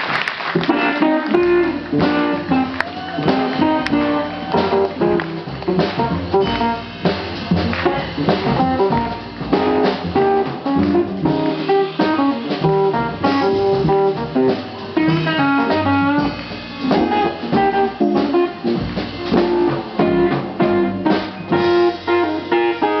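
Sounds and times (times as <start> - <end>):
jazz guitar lead line: 0.6 - 23.0
plucked double bass: 0.6 - 23.0.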